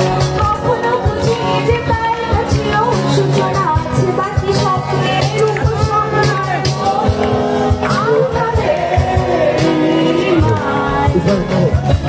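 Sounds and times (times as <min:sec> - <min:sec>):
woman singing into microphone: 0:00.0 - 0:11.7.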